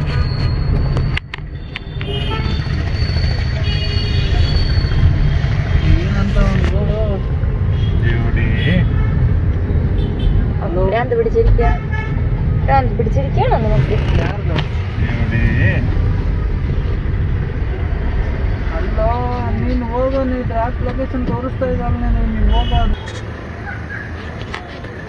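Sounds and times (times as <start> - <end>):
road rumble inside car: 0.0 - 25.0
car horn toots: 22.5 - 23.1.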